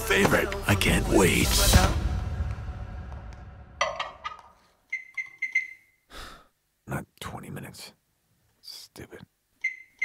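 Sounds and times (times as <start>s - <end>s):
microwave keypad beeping: 4.9s - 5.9s, 9.6s - 10.0s.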